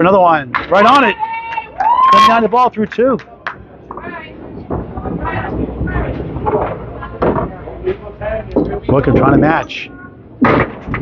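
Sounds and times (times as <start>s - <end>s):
background chatter: 0.0s - 11.0s
balls rolling on wooden lanes: 0.0s - 11.0s
balls knocking pins: 0.5s - 1.2s, 10.4s - 11.0s.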